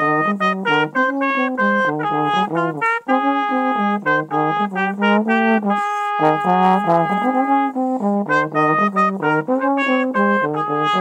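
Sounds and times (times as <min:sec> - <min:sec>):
slide trombone playing: 0:00.0 - 0:11.0.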